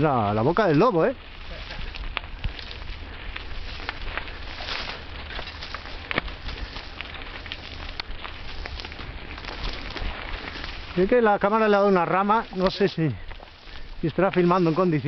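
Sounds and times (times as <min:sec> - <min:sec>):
bike clicks and rattles: 0:00.0 - 0:15.0
bike tyres crunching on dirt: 0:00.0 - 0:15.0.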